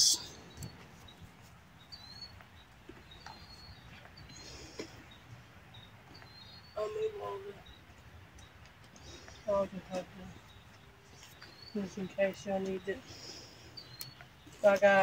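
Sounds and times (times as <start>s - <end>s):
faint bird chirps: 1.8s - 15.0s.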